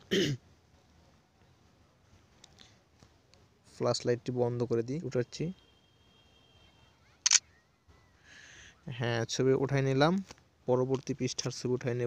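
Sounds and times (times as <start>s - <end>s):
camera shutter double click: 7.2s - 7.4s.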